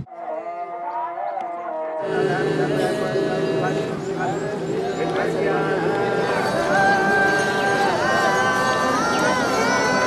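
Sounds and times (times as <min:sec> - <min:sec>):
voices chanting held notes: 0:02.0 - 0:10.0.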